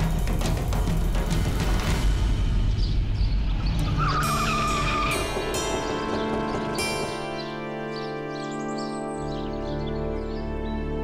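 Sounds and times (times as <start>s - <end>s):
melodic line over sustained chords: 4.7s - 11.0s.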